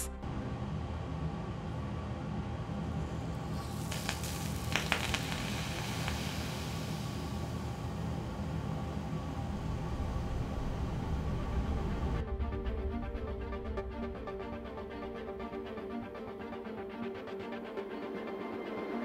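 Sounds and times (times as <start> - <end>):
chemical reaction hissing: 3.5 - 7.7
sharp crackles: 3.6 - 7.4
soft background music: 8.0 - 19.0.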